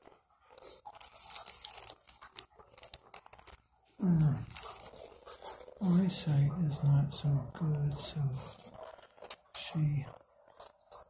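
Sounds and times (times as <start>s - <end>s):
dog crunching kibble: 0.0s - 5.9s, 8.4s - 11.0s.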